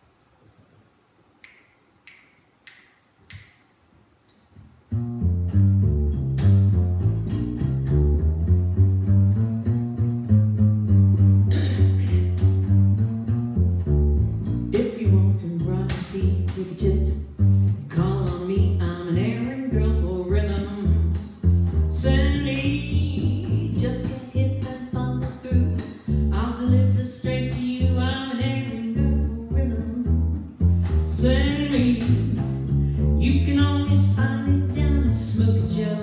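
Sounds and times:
finger snaps: 0:01.4 - 0:03.8, 0:06.2 - 0:08.1, 0:11.8 - 0:12.8, 0:24.0 - 0:26.1, 0:30.6 - 0:32.8
plucked double bass: 0:04.9 - 0:36.0
woman singing jazz: 0:11.5 - 0:12.8, 0:14.7 - 0:21.2, 0:21.9 - 0:36.0.

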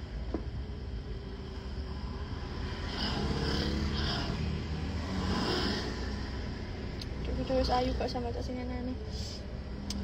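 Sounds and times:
low rumble inside car: 0:00.0 - 0:10.0.

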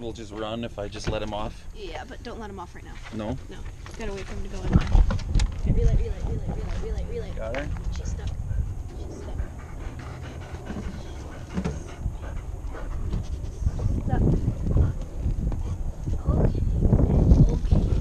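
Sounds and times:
dog breathing: 0:08.3 - 0:16.0.

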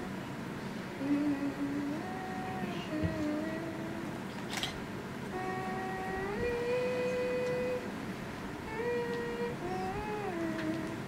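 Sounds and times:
slow tune of long held notes: 0:00.0 - 0:04.4, 0:05.2 - 0:11.0.

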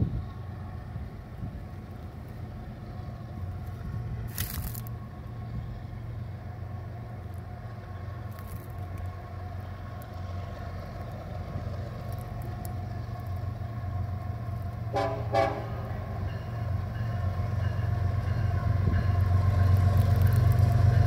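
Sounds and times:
freight train rumbling: 0:00.0 - 0:21.0.

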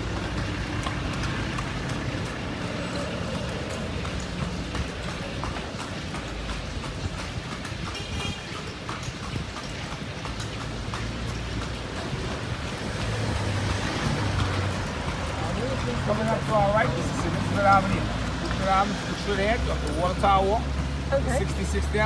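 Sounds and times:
horse hooves clip-clopping on pavement: 0:00.0 - 0:22.0
road traffic hum: 0:00.0 - 0:22.0.

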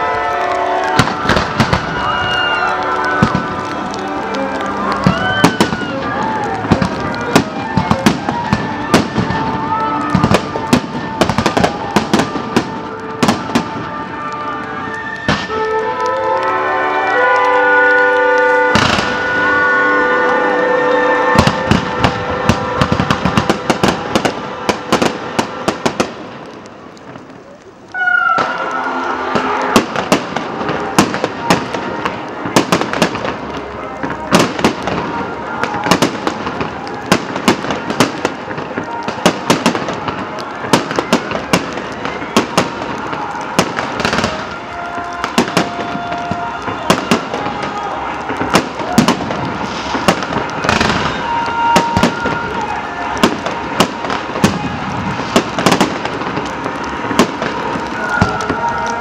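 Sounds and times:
fireworks bangs and crackles: 0:00.0 - 0:59.0.

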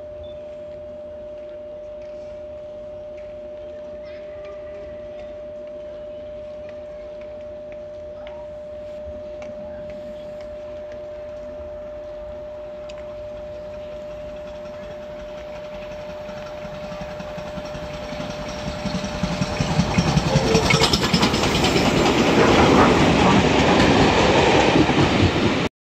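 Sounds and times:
steam locomotives approaching: 0:00.2 - 0:25.7
coaches rattling past: 0:13.3 - 0:25.3.

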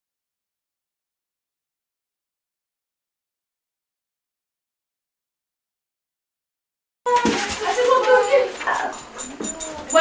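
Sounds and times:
children's voices: 0:07.1 - 0:10.0
dog whining: 0:08.6 - 0:10.0.

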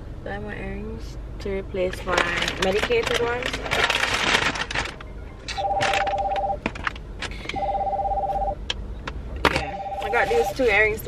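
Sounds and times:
handling clicks and rustling: 0:01.9 - 0:07.6
electronic two-tone ring: 0:05.6 - 0:06.6, 0:07.5 - 0:08.6, 0:09.6 - 0:10.6.

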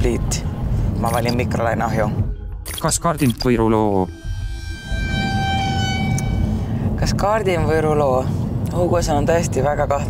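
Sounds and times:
steady electronic tone: 0:02.3 - 0:08.0.

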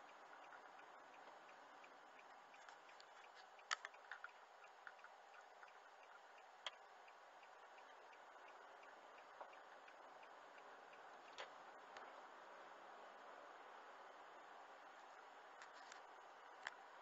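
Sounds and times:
faint road noise: 0:00.0 - 0:17.0
turn signal ticking: 0:00.0 - 0:17.0.

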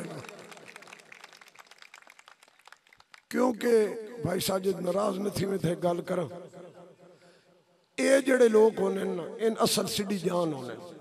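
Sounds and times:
applause: 0:00.0 - 0:03.9.

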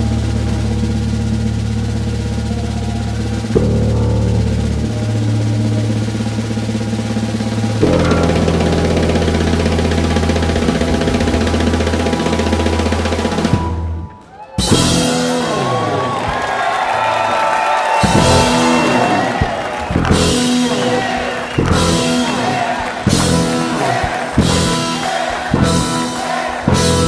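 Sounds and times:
electric bass: 0:00.0 - 0:27.0
electric guitar: 0:03.5 - 0:13.7, 0:14.6 - 0:27.0
drums and cymbals played hard: 0:14.6 - 0:27.0.

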